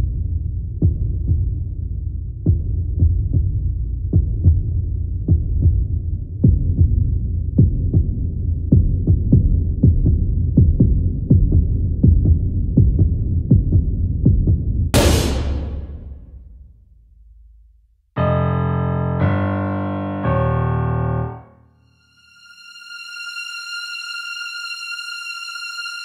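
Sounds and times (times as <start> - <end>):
heartbeat-like low thuds: 0.0 - 16.5
sudden sharp crash: 15.0 - 16.7.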